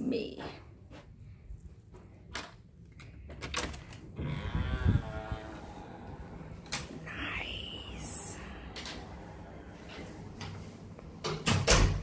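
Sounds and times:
door hinges creaking: 0:03.4 - 0:07.1.

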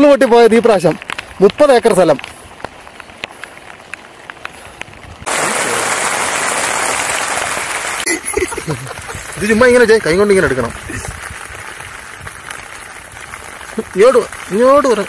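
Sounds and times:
heavy rain hissing: 0:00.7 - 0:15.0.

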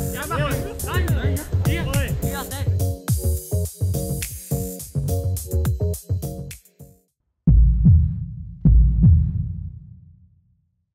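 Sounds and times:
heartbeat deep paired thumps: 0:07.5 - 0:10.1.

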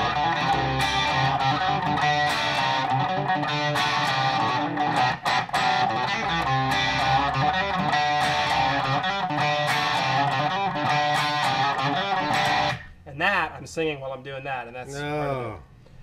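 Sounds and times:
electric guitar fast riff: 0:00.0 - 0:12.9.

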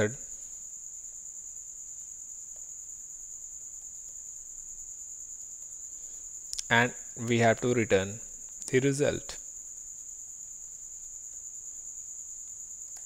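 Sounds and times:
faint hiss: 0:00.0 - 0:13.0.

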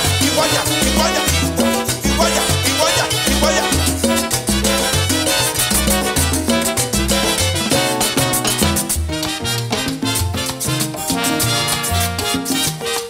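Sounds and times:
salsa band playing: 0:00.0 - 0:13.0.

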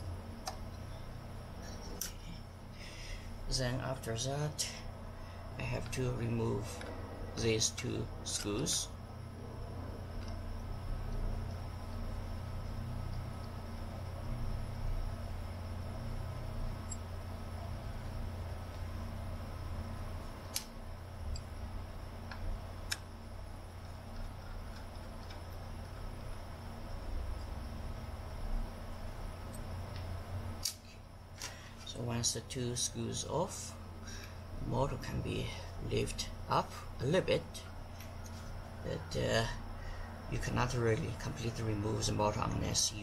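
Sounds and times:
low hum: 0:00.0 - 0:43.0.

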